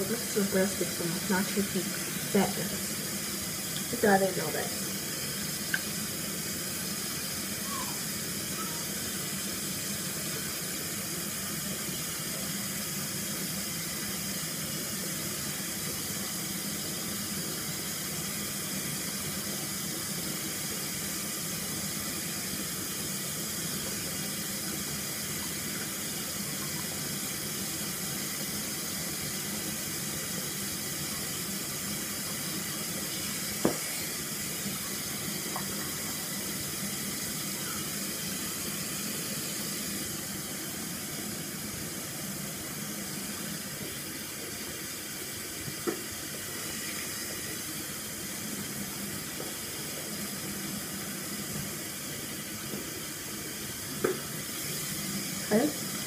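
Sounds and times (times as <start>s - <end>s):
tap running into sink: 33.6s - 34.0s, 35.5s - 35.9s, 45.8s - 46.1s, 54.0s - 54.3s.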